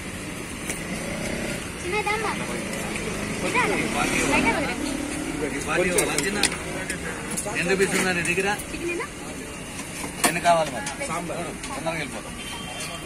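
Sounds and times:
low traffic rumble: 0.0s - 13.0s
voices chattering: 0.8s - 13.0s.

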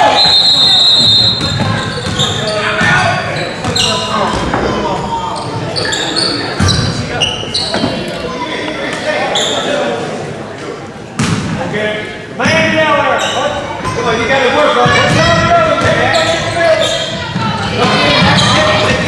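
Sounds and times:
voices echoing in gym: 0.0s - 19.0s.

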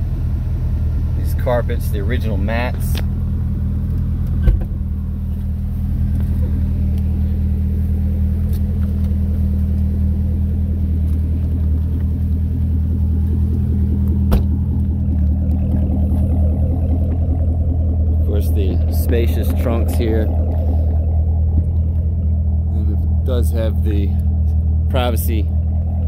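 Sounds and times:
car engine idling: 0.0s - 26.0s
thump: 4.4s - 4.8s, 14.3s - 14.6s.

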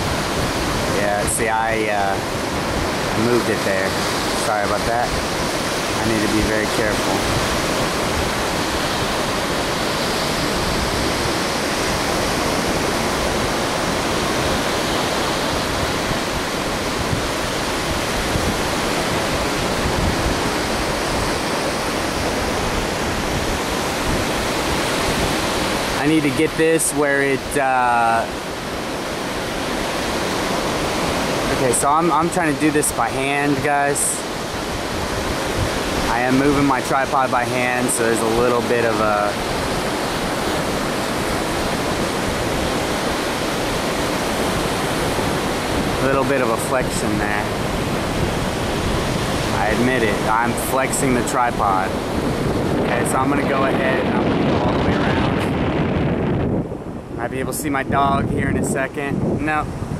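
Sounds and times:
ocean surf breaking: 0.0s - 59.9s
wind on microphone: 0.0s - 59.9s.

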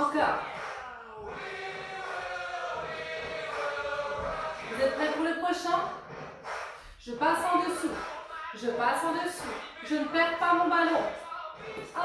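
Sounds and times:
woman speaking: 0.0s - 0.4s, 4.7s - 5.9s, 7.0s - 8.0s, 8.6s - 11.1s.

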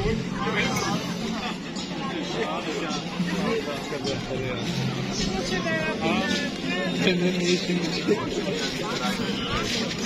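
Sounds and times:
crowd chatter: 0.0s - 10.0s
people talking: 0.0s - 10.0s.

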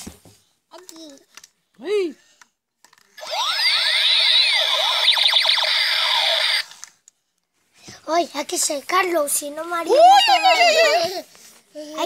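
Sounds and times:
electronic tones sweeping up and down: 3.2s - 6.7s.

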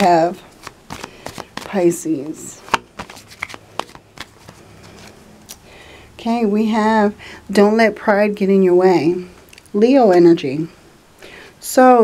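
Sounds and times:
cards being shuffled: 0.4s - 5.2s.

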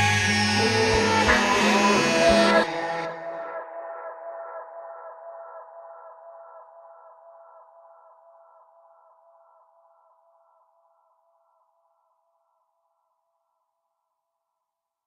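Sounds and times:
pulsing synth chord: 0.0s - 5.1s.

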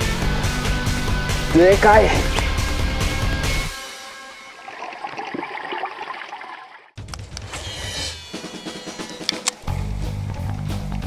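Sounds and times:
water splashing and gurgling: 4.5s - 7.0s.

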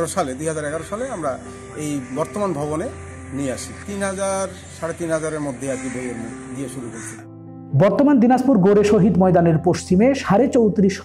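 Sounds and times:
crows cawing: 0.0s - 7.6s
held music chord: 0.0s - 9.2s
man narrating: 0.0s - 11.0s
man speaking outdoors: 0.0s - 11.0s.

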